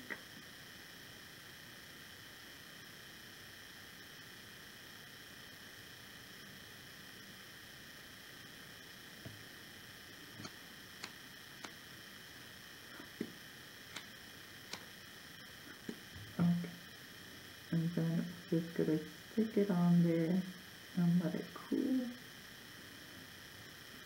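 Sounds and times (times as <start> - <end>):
faint room tone hiss: 0.0 - 24.0.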